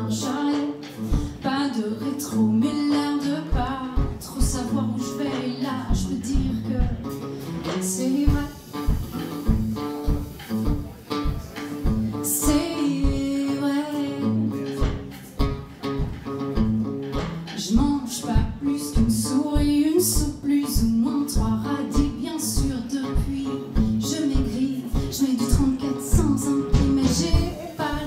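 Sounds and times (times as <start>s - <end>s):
woman singing: 0.0s - 10.2s, 12.1s - 15.1s, 17.5s - 28.0s
bass guitar: 0.0s - 28.0s
drums: 0.0s - 28.0s
guitar: 0.0s - 28.0s.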